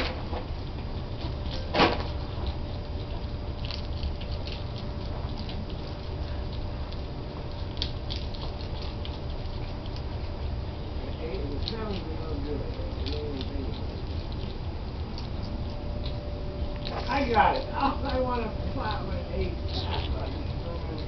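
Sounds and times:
chewing clicks and crunches: 0:00.0 - 0:21.0
steady low hum: 0:00.0 - 0:21.0.

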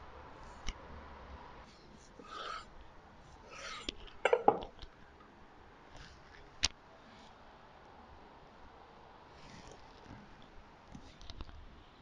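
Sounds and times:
knife scraping: 0:02.0 - 0:02.7, 0:03.4 - 0:04.7
knife knocking on wooden board: 0:04.3 - 0:04.7.

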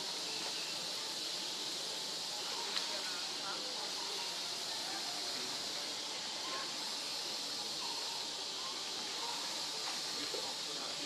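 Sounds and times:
faint distant voices: 0:00.0 - 0:11.0
high-pitched outdoor hiss: 0:00.0 - 0:11.0.

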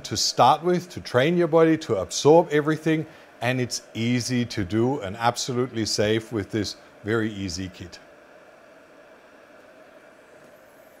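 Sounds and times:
faint hum: 0:00.0 - 0:11.0
room hiss: 0:00.0 - 0:11.0.

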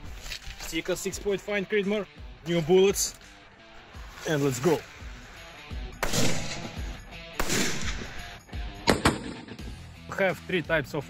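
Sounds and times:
rifle shots ringing: 0:06.0 - 0:09.6.

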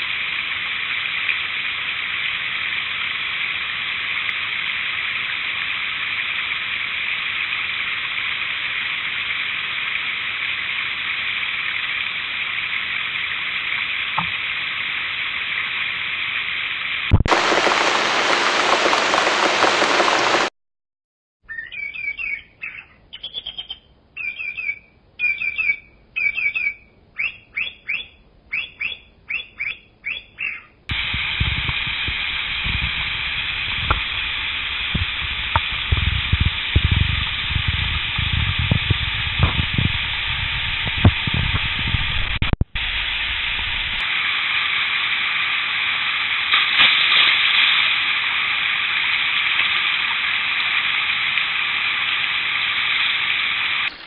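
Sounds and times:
stream rushing over rocks: 0:17.2 - 0:20.5
bird chirping: 0:21.5 - 0:30.8
low thumps: 0:30.9 - 0:44.0.

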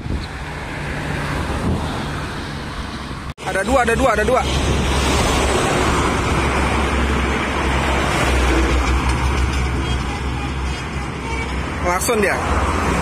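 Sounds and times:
highway traffic rumble: 0:00.0 - 0:13.0.

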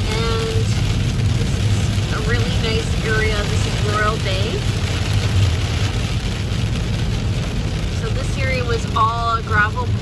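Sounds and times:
car road rumble: 0:00.0 - 0:10.0
rain on windshield: 0:00.0 - 0:10.0.

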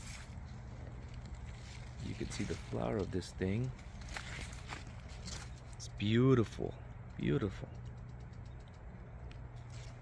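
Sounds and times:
steady low hum: 0:00.0 - 0:10.0
faint ticks: 0:07.0 - 0:09.6.

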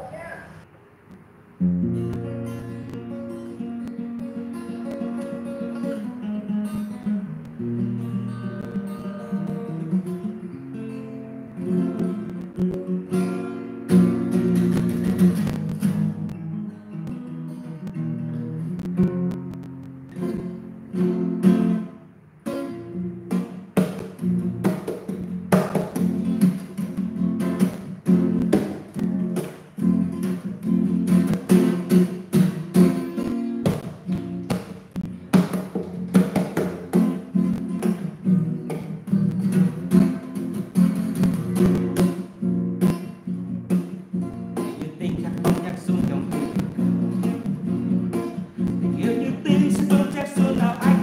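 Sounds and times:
acoustic guitar: 0:00.0 - 0:51.0.

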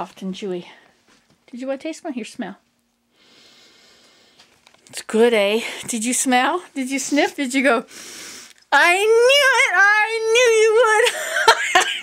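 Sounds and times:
breathy inhalation: 0:03.1 - 0:04.5, 0:07.9 - 0:08.6.

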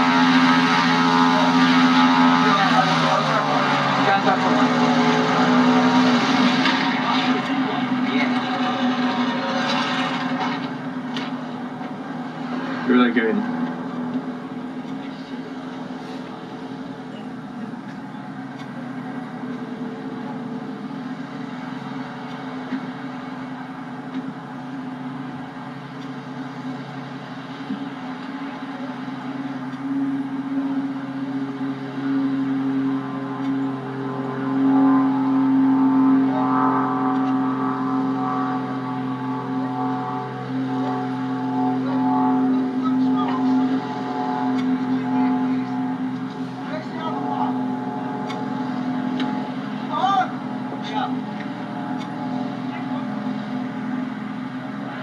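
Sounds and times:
propeller aircraft engine idling: 0:00.0 - 0:55.0.

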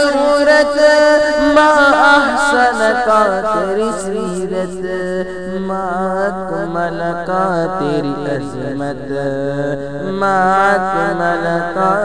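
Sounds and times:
solo voice singing: 0:00.0 - 0:12.0.

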